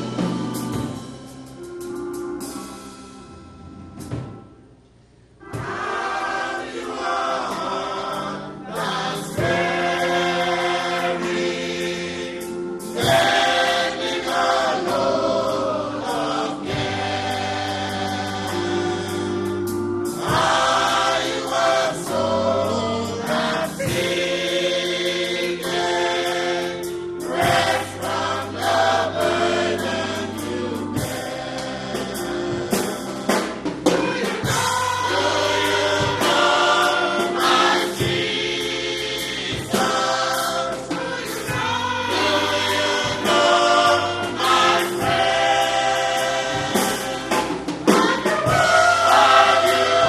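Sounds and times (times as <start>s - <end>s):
choir singing gospel music: 0.0s - 4.7s, 5.4s - 50.0s
instrumental backing: 0.0s - 50.0s.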